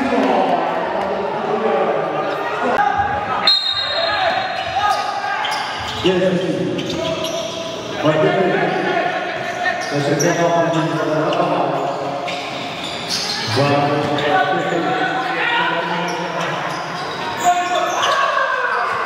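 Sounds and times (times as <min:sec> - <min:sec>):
voices echoing in gym: 0:00.0 - 0:19.0.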